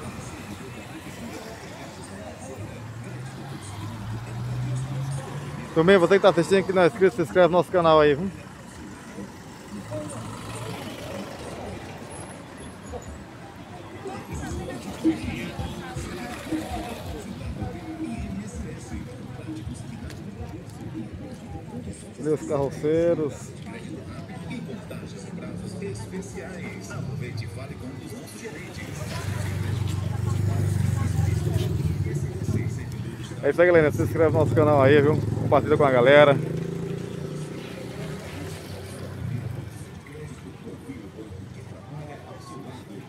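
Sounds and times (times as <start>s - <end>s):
car and motorcycles passing: 0.0s - 43.0s
faint voices of people: 0.0s - 43.0s
people talking faintly: 0.0s - 43.0s
traffic noise: 0.0s - 43.0s
motorcycle passing by: 29.0s - 40.2s.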